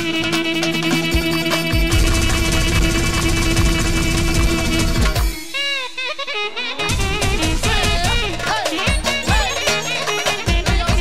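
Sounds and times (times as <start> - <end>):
driving drum beat: 0.0 - 6.0, 6.8 - 11.0
band playing fast dance music: 0.0 - 11.0.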